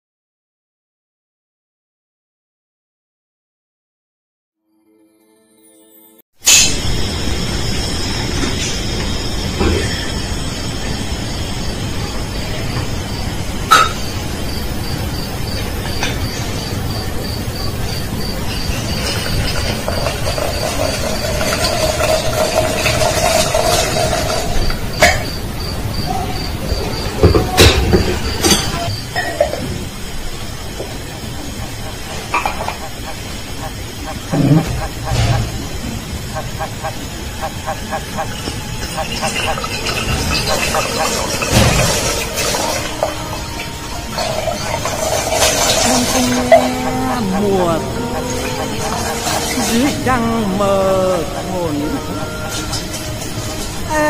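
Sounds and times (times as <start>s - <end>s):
rushing water: 10.4s - 25.9s, 29.7s - 54.0s
hot water trickling into glass: 18.6s - 25.1s, 37.9s - 46.7s
faint background music: 37.6s - 54.0s.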